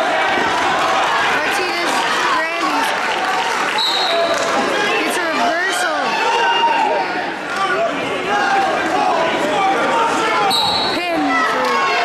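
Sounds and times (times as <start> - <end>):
crowd shouting and yelling: 0.0 - 12.0
referee's whistle blast: 3.8 - 4.4, 10.5 - 11.1.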